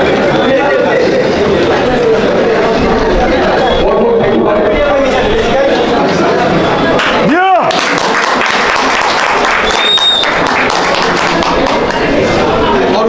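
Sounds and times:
audience applauding: 7.0 - 12.3
high whistle: 9.6 - 10.4.

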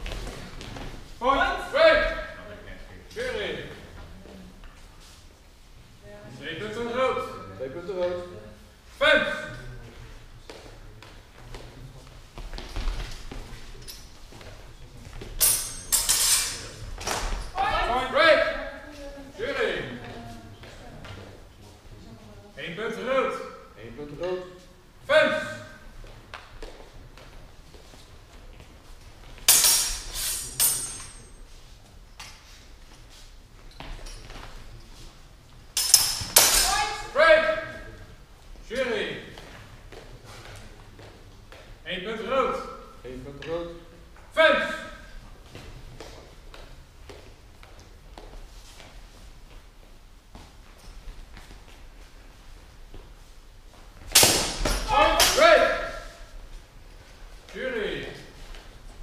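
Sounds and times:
faint taps and steps: 0.0 - 1.2, 9.8 - 15.4, 20.0 - 21.9, 25.9 - 29.5, 38.3 - 41.9, 45.2 - 54.8
steel swords clashing: 15.4 - 16.8, 29.5 - 31.4, 35.8 - 37.2, 54.1 - 56.1
loud shouting: 36.6 - 37.8, 54.9 - 56.2
sword blow crack: 54.1 - 55.4.

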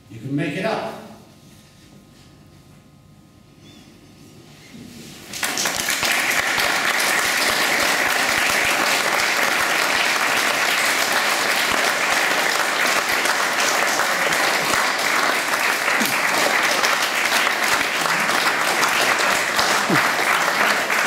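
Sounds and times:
audience applauding: 5.3 - 21.0.

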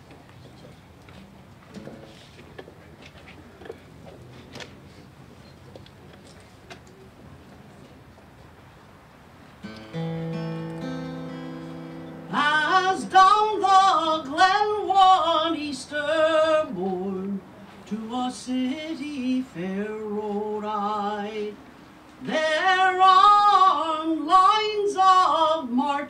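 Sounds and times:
acoustic guitar: 1.2 - 2.4, 9.6 - 21.6, 22.2 - 26.0
woman singing a ballad: 12.3 - 21.6, 22.2 - 26.0.

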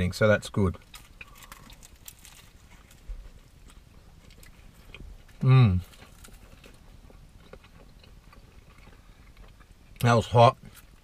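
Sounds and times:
people chewing food: 0.6 - 11.0.

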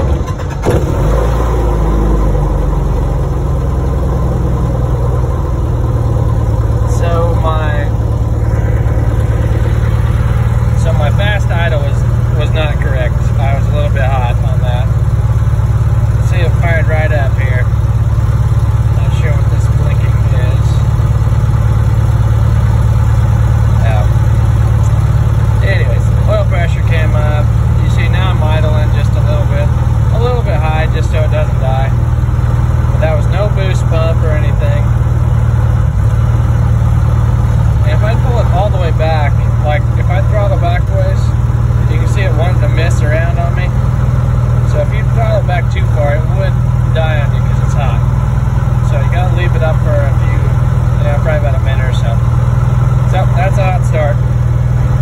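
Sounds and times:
aircraft engine and propeller idling: 0.0 - 55.0.

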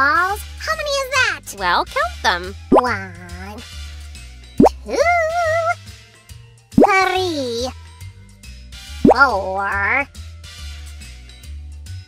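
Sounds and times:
light background music: 0.0 - 12.0
cartoon pop bloop: 2.7 - 3.0, 4.6 - 5.0, 9.0 - 10.0.

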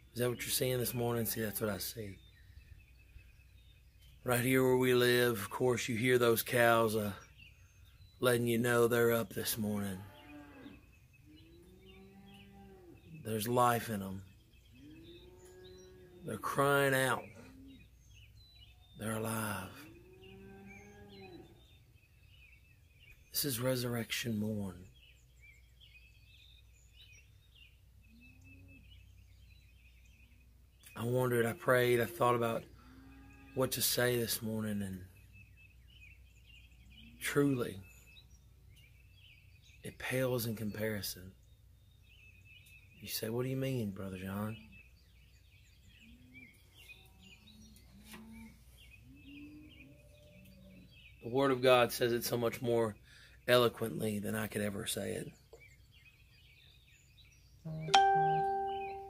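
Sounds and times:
faint bird chirps: 0.0 - 59.0.

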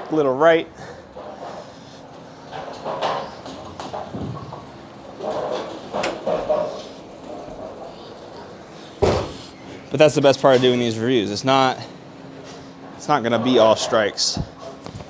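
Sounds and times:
bowling pins clattering: 2.5 - 7.8.

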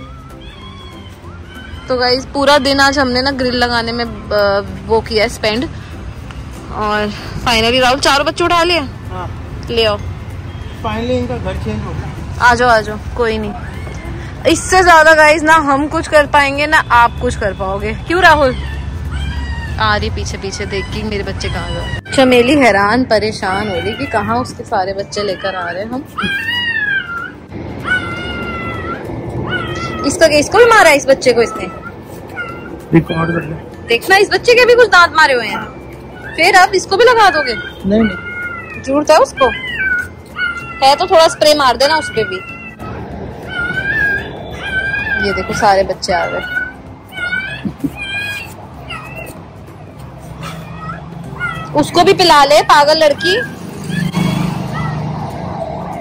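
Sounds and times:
newborn puppies crying: 0.0 - 3.6, 13.5 - 15.2, 18.1 - 22.5, 23.3 - 56.0.

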